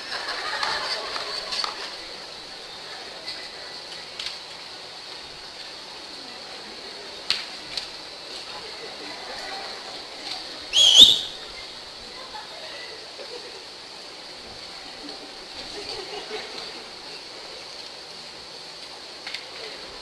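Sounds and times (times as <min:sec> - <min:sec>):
large room hiss: 0:00.0 - 0:20.0
rising wavering whistle: 0:10.7 - 0:11.5.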